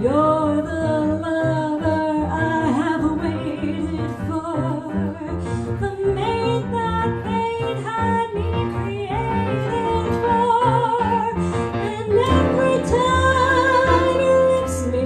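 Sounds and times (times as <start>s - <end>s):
grand piano: 0.0s - 15.0s
guitar: 0.0s - 15.0s
upright bass: 0.0s - 15.0s
woman singing jazz: 0.0s - 15.0s.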